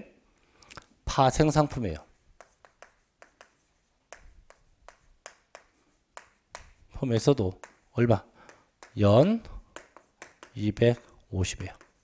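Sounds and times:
chalk clicking on blackboard: 0:01.9 - 0:12.0.

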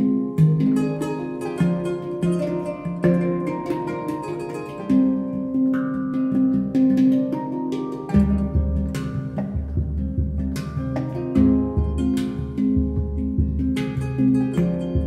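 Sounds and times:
handpan struck notes: 0:00.0 - 0:15.0
kora plucked strings: 0:00.0 - 0:15.0
deep low notes: 0:08.2 - 0:15.0.

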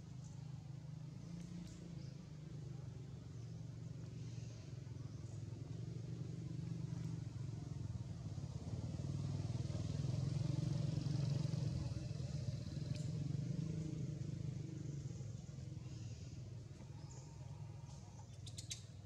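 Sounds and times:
vehicle engine hum passing: 0:00.0 - 0:19.0.

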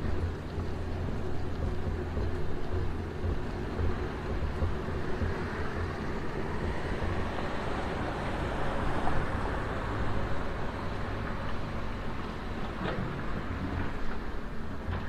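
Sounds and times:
road traffic rumble: 0:00.0 - 0:15.0.

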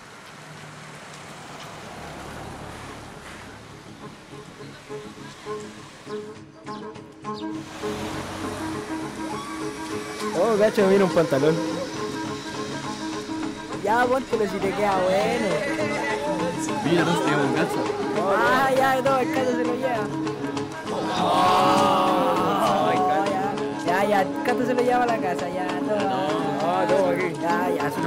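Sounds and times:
background music with held notes: 0:03.7 - 0:28.0.

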